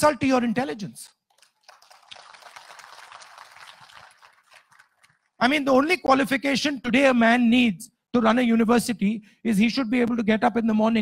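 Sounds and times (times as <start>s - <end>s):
audience applause: 1.3s - 5.4s.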